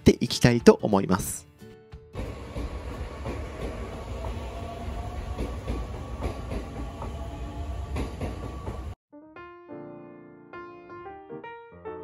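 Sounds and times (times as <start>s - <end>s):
train low rumble: 2.2s - 9.0s.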